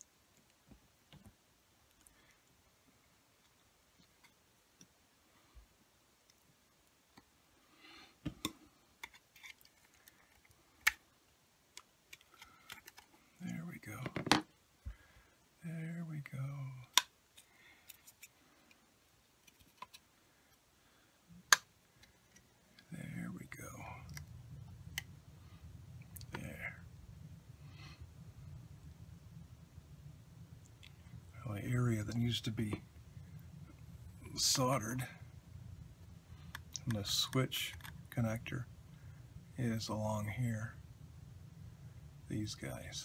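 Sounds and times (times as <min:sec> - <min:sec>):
steady low hum: 0:00.0 - 0:43.0
plastic clicks and snaps: 0:21.5 - 0:22.5.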